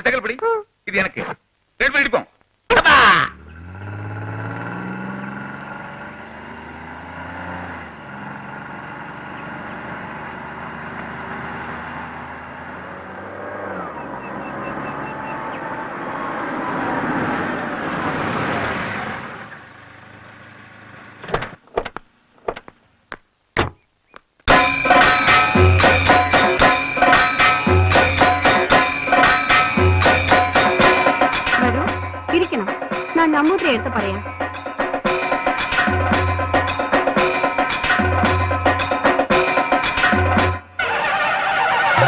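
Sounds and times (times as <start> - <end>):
vehicle engine running: 3.3 - 16.1.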